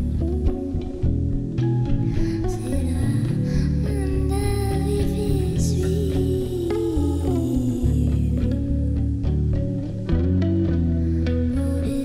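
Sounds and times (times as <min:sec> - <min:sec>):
bass guitar: 0:00.0 - 0:12.0
electric guitar: 0:00.0 - 0:12.0.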